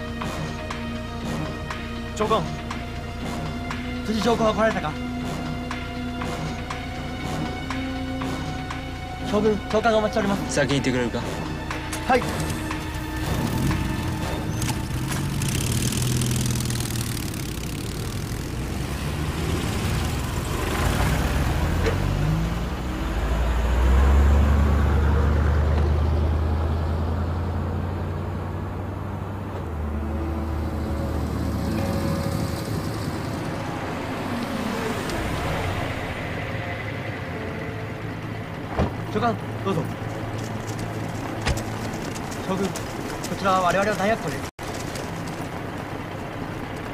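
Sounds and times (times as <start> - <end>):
vehicle engines humming: 0.0 - 46.9.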